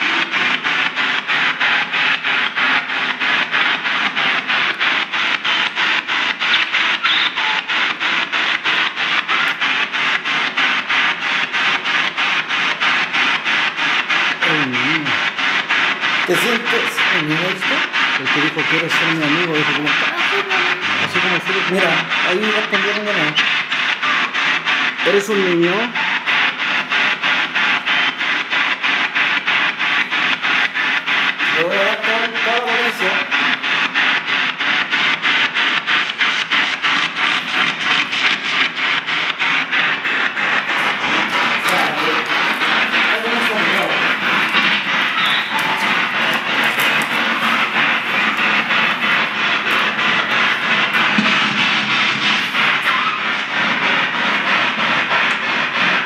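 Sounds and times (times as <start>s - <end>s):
pulsing radio static: 0.0s - 56.0s
voice fragments: 14.2s - 24.4s, 25.0s - 28.2s, 29.9s - 33.6s, 39.7s - 54.2s
guitar music fragments: 40.0s - 55.2s.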